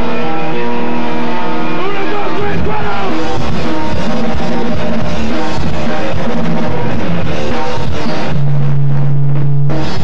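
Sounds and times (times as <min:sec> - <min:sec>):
person singing: 0:00.0 - 0:03.8
distorted electric guitar chords: 0:00.0 - 0:10.0.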